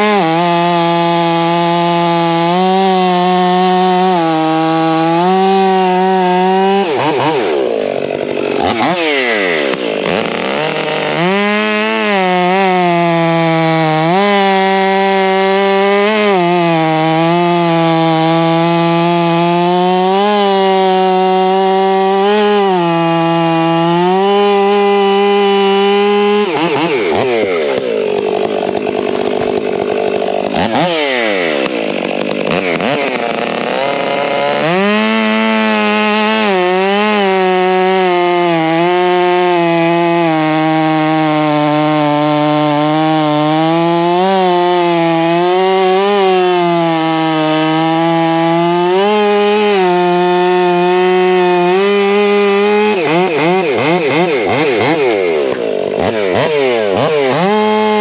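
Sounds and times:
chainsaw cutting log: 0:00.0 - 0:58.0.

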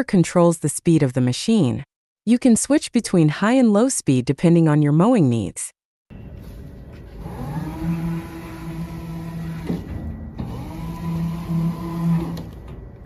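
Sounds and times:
electric motors whining: 0:06.9 - 0:13.0
motor click: 0:09.3 - 0:12.8.

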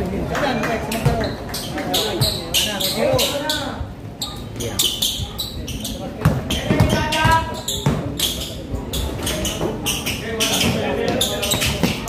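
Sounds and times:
players and spectators talking: 0:00.0 - 0:12.0
basketball bouncing on concrete: 0:00.8 - 0:03.5, 0:05.0 - 0:12.0.

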